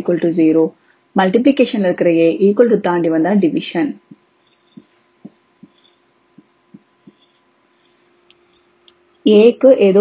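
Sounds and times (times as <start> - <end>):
light steady hum: 0.0 - 10.0
marker tapping on paper: 4.1 - 7.5.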